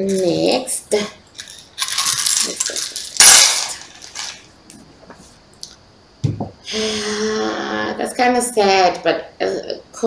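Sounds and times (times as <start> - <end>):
small hard pieces clattering: 1.4 - 4.5.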